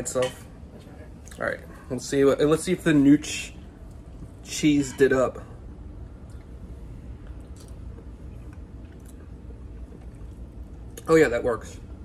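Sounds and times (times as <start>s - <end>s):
steady low hum: 0.0s - 12.0s
faint chewing with wet mouth clicks: 7.2s - 11.1s.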